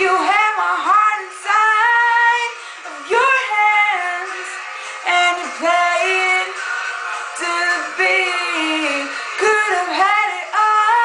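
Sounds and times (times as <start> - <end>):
woman singing: 0.0 - 6.6, 7.2 - 11.0.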